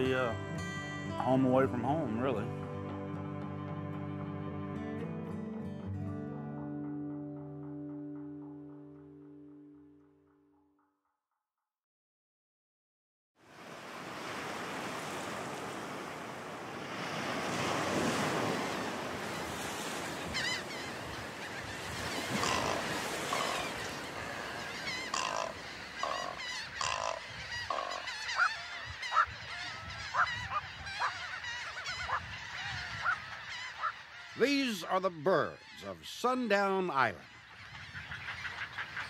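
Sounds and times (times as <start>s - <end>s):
waterbirds calling harshly: 13.9s - 39.0s.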